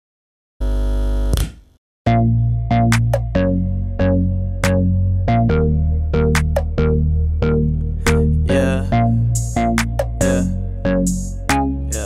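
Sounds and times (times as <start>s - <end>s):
buzzy electronic tone: 0.6s - 1.4s.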